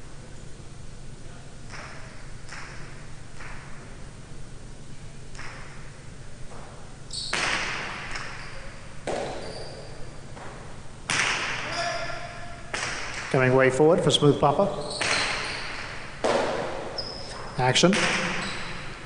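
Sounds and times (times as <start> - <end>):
hard ball cracking off walls: 9.0 - 9.4, 10.4 - 11.7, 15.0 - 16.9.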